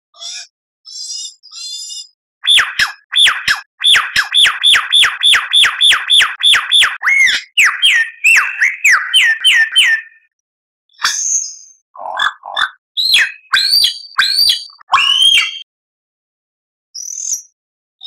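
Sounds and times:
lyrebird song: 0.1s - 10.3s, 10.9s - 15.7s, 17.0s - 17.6s.

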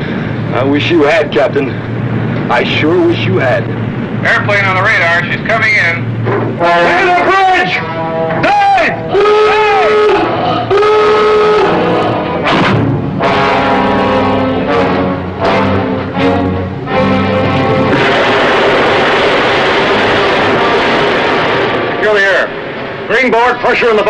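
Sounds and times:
loud rushing noise: 0.0s - 24.0s
klaxon alarm blast: 5.7s - 23.1s
music with heavy hits: 11.8s - 22.0s.

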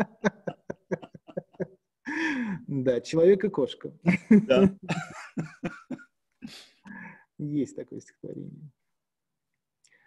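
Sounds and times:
man laughing quietly: 0.0s - 1.7s, 4.3s - 6.0s.

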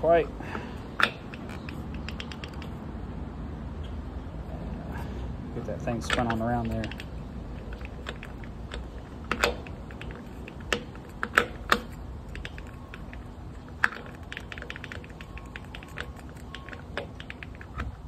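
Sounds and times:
distributor clicking and knocking: 6.0s - 18.0s.

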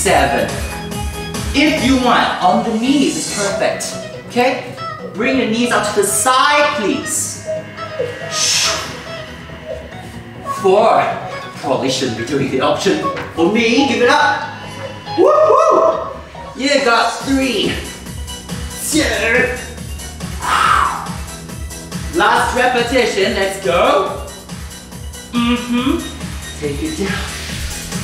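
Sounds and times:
workout background music: 0.0s - 28.0s.

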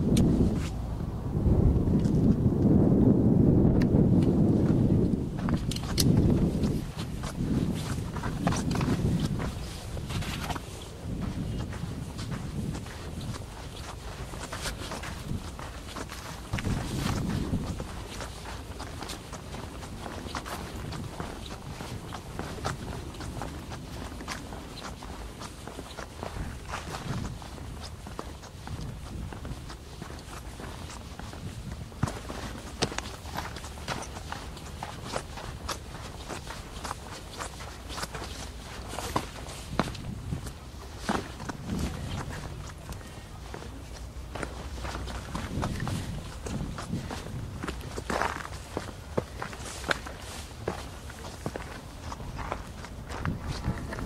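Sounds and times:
footsteps on sand and stone: 3.9s - 54.0s.

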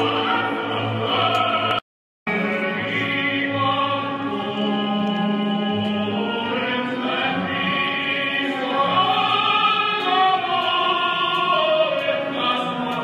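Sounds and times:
operatic singing: 0.0s - 13.0s
orchestral accompaniment: 0.0s - 13.0s.

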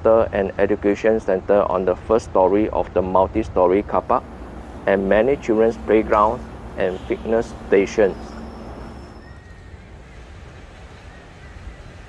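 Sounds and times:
low background noise: 0.0s - 12.0s
person speaking: 2.8s - 8.9s
faint high whistle: 6.0s - 10.3s.

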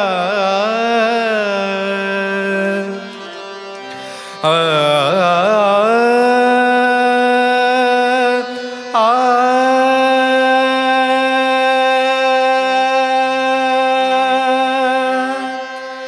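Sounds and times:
steady drone: 3.8s - 16.0s
person singing a long note: 4.4s - 16.0s.

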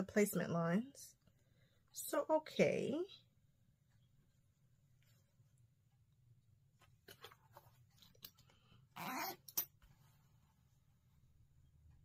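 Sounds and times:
pet whining: 9.0s - 9.7s.

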